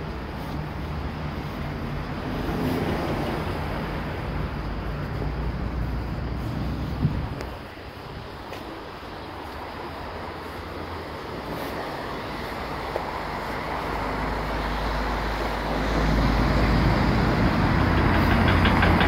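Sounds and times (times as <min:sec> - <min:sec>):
deep low rumble of heavy vehicles: 0:00.0 - 0:19.0
road traffic passing: 0:00.0 - 0:19.0.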